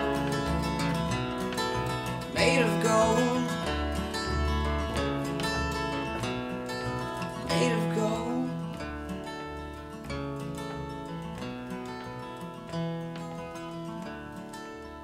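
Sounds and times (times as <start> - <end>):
double bass notes: 0.0 - 13.8
strummed acoustic guitar: 0.0 - 15.0.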